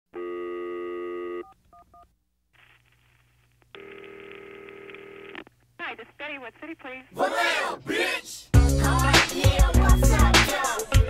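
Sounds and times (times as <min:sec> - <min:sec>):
telephone dial tone: 0:00.2 - 0:02.0, 0:03.8 - 0:05.4.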